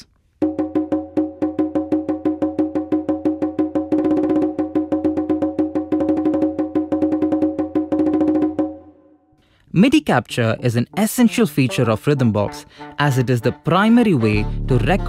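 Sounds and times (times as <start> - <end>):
pitched percussive rhythm: 0.0 - 9.0, 9.8 - 15.0.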